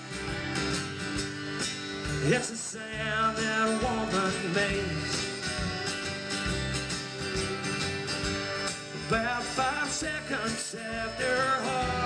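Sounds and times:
country-rock band playing: 0:00.0 - 0:12.0
drums: 0:00.0 - 0:12.0
electric guitar: 0:00.0 - 0:12.0
strummed acoustic guitar: 0:00.0 - 0:12.0
person singing: 0:02.2 - 0:05.4, 0:09.0 - 0:12.0.

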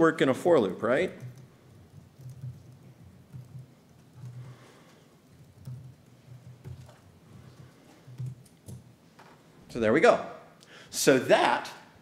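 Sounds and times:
typing on computer keyboard: 0:01.1 - 0:08.9.

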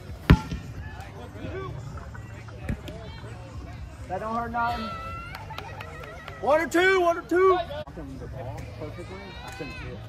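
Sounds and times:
distant voices of players: 0:00.0 - 0:10.0
ball kicked with thud: 0:00.2 - 0:00.8.

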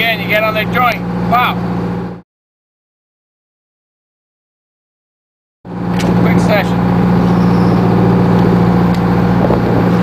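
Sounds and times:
boat engine humming: 0:00.0 - 0:02.2, 0:05.7 - 0:10.0.

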